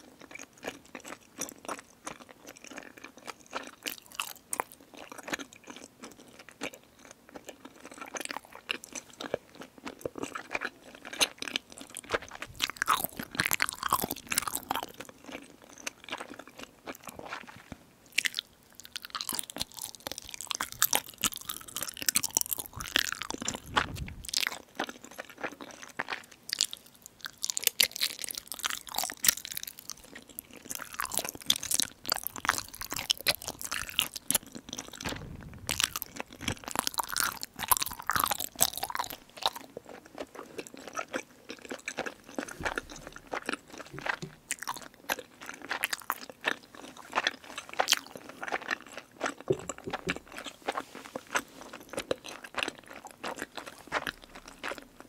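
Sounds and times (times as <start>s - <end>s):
person chewing crunchy food: 0.0s - 55.0s.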